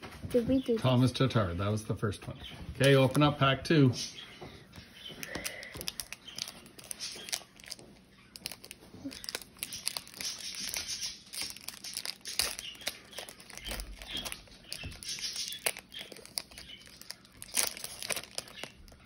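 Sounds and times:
wrapper crinkling and tearing: 5.2 - 19.0.

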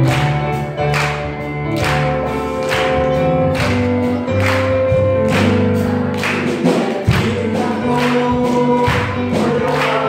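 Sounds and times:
hand claps: 0.0 - 7.4, 8.0 - 10.0
women's choir singing: 5.4 - 10.0.

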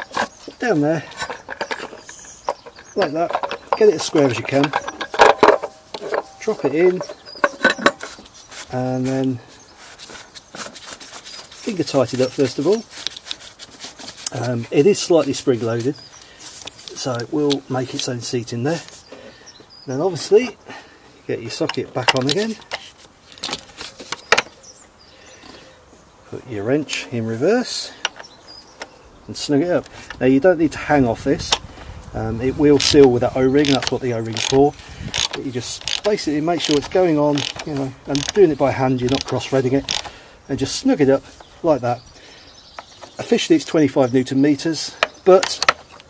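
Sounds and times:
metal socket clinking: 1.1 - 8.0.

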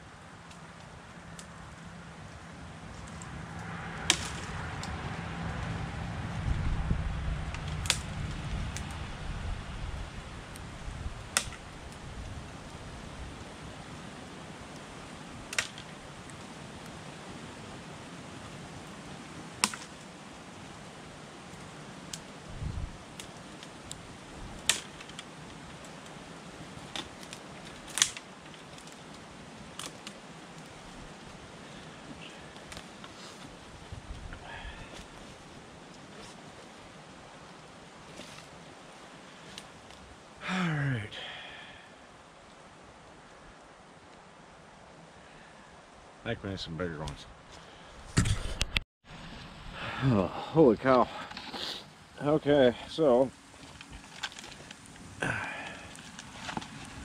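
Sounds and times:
road traffic rumble: 0.0 - 41.2
dry branches snapping: 2.9 - 5.7, 7.4 - 9.1, 10.4 - 12.0, 12.6 - 17.2, 18.9 - 20.2, 21.3 - 40.1, 53.5 - 57.0.

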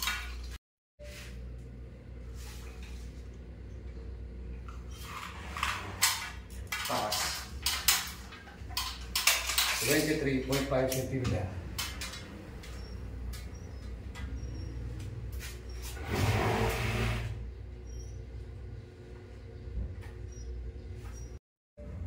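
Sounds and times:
person speaking: 9.8 - 11.7.

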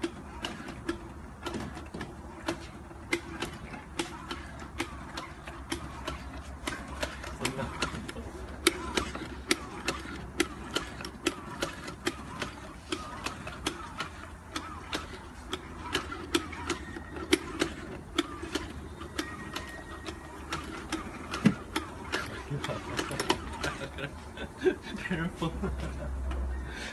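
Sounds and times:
donut machine mechanism clicking: 0.0 - 24.2
machine low hum: 0.0 - 26.9.

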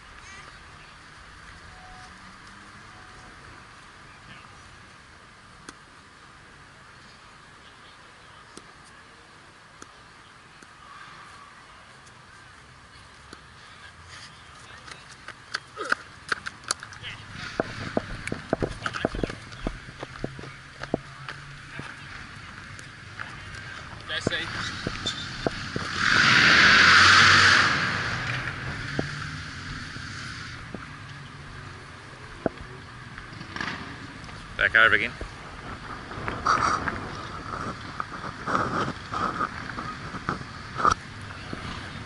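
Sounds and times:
loud rush of noise: 17.0 - 42.0.

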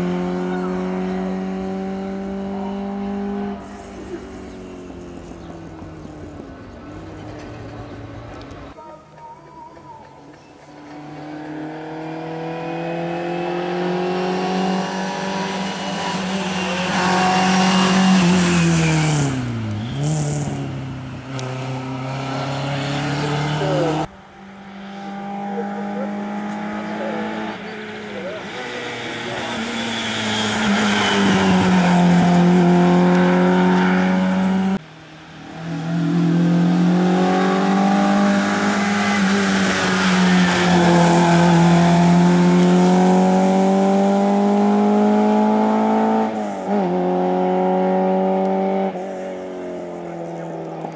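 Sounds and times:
rally car engines revving: 0.0 - 8.8, 10.3 - 50.9
car passing by: 10.6 - 50.9.

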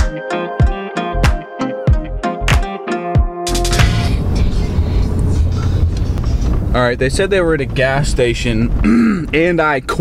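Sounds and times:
road and engine rumble in cabin: 3.6 - 10.0.

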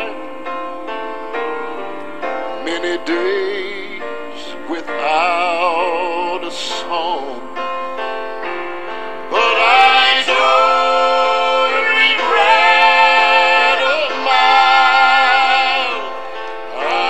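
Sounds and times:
gospel singing held chords: 0.0 - 17.0.

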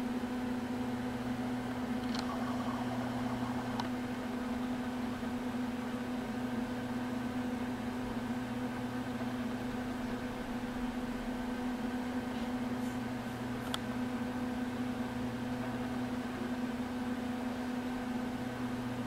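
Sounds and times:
machine hum: 0.0 - 7.8.

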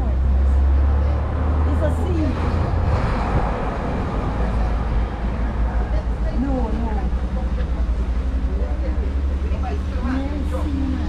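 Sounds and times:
faint voices talking: 0.0 - 11.0
steady low rumble: 0.0 - 11.0.

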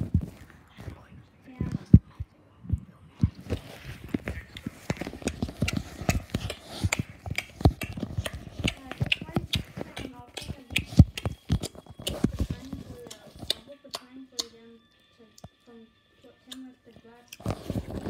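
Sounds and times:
open-mouthed chewing: 3.5 - 14.6.

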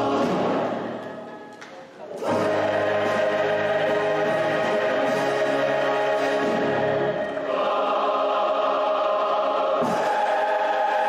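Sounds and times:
choir singing: 0.0 - 1.4, 2.1 - 11.0.

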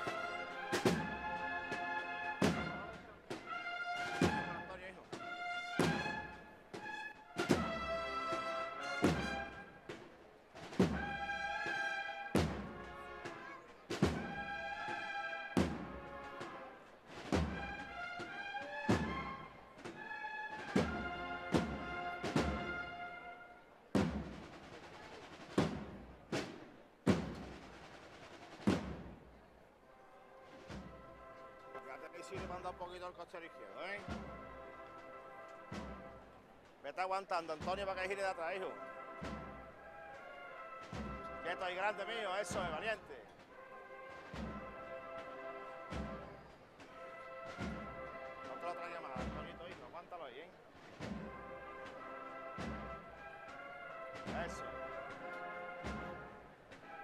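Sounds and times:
drum strokes: 0.0 - 29.7, 30.4 - 57.0
brass band playing a march: 0.0 - 57.0.

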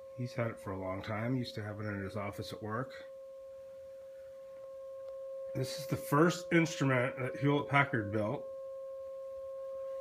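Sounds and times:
steady sine-wave tone: 0.0 - 10.0.

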